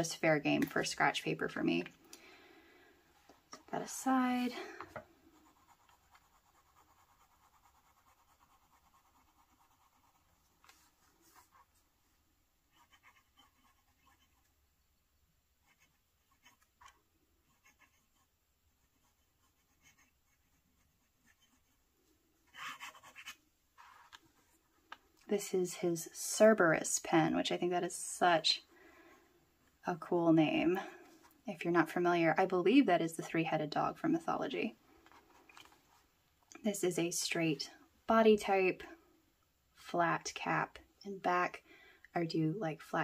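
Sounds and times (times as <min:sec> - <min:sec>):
fountain pen scratching on paper: 0:05.3 - 0:10.6, 0:12.7 - 0:14.5, 0:15.6 - 0:21.8, 0:22.5 - 0:24.2.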